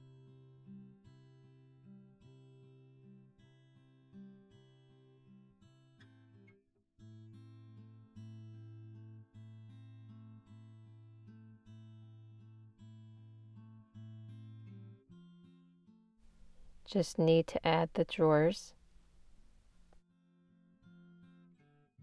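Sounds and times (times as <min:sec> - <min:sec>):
acoustic guitar music: 0:00.0 - 0:21.9.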